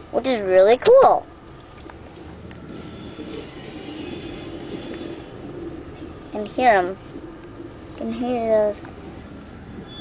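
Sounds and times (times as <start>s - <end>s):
train rumble: 2.1s - 10.0s
wheels squealing on rail: 2.7s - 6.4s, 9.8s - 10.0s.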